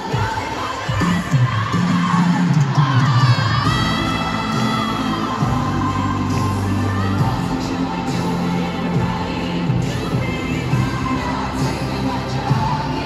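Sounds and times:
loud live pop music: 0.0 - 13.0
stadium crowd screaming and cheering: 0.0 - 13.0.

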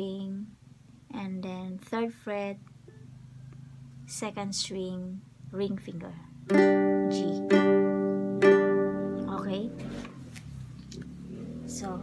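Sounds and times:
ukulele chord ringing: 6.5 - 9.8.

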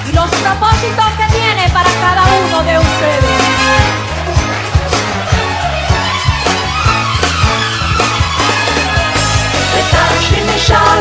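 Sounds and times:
music with steady beat and bass: 0.0 - 11.0.

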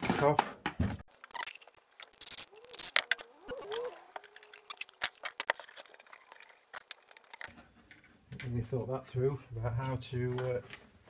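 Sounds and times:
plastic hose clicking and rubbing: 1.2 - 8.5.

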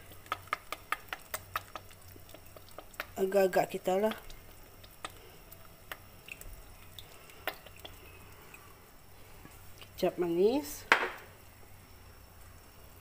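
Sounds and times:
liquid popping and dripping: 0.0 - 8.7, 10.8 - 11.4
broth boiling in a pot: 0.0 - 13.0.

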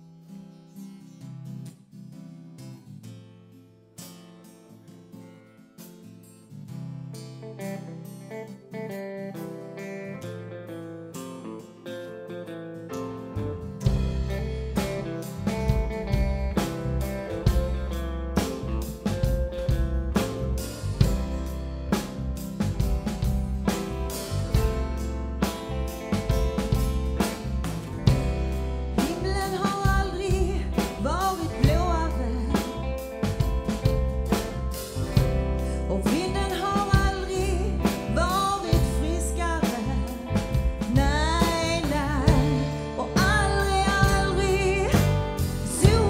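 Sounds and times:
guitar: 0.0 - 46.0
bass and drums: 13.4 - 46.0.

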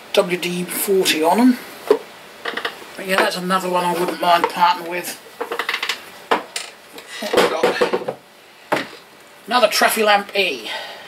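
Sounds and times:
plastic lamps clattering: 1.9 - 8.2
sharp plastic knocks: 5.4 - 9.0.

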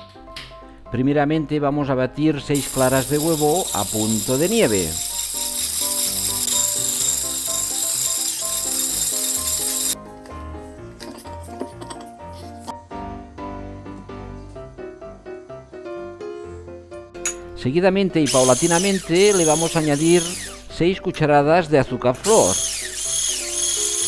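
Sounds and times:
background music: 0.0 - 24.0
electric hand mixer whirring: 2.6 - 10.0, 18.2 - 20.7, 22.2 - 24.0.

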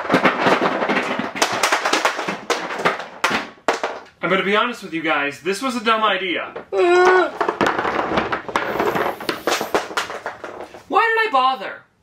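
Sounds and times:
metal cans clattering onto floor: 0.0 - 4.2, 6.6 - 10.9.

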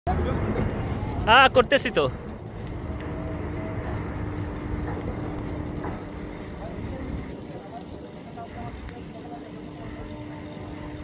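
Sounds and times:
bicycle tyre rumble: 0.1 - 11.0.

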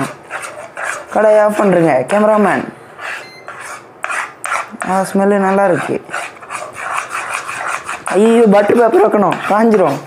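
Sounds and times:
spoon scraping a frying pan: 0.0 - 10.0.

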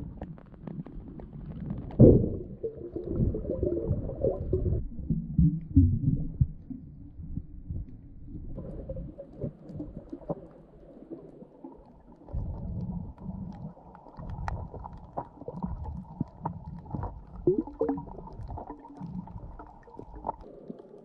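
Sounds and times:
underwater rumbling and sloshing: 0.0 - 21.0.

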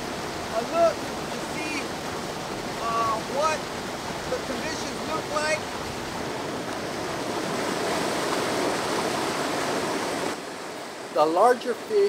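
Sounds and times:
water rushing from culvert pipes: 0.0 - 12.0.

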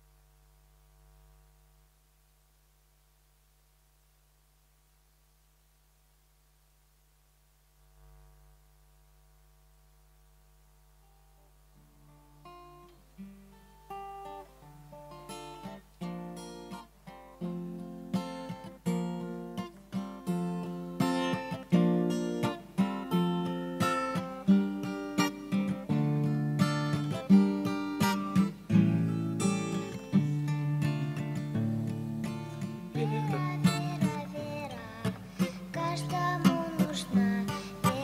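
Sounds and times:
acoustic guitar playing: 10.8 - 38.0.

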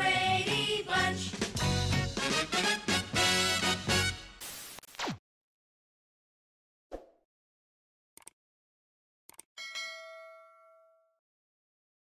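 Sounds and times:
notification bell ding: 9.6 - 11.2.

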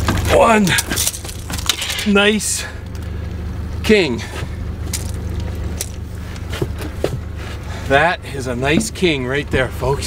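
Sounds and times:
outboard motor running: 2.6 - 10.0.

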